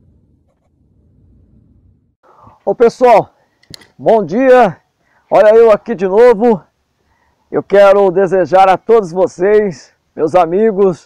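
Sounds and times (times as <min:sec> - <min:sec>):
low rumble sound effect: 0:00.0 - 0:02.2.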